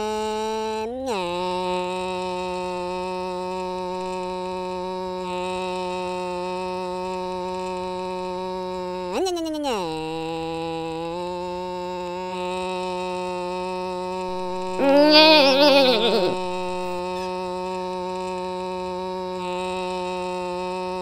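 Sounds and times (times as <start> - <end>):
cartoon engine drone revving: 14.3 - 17.3.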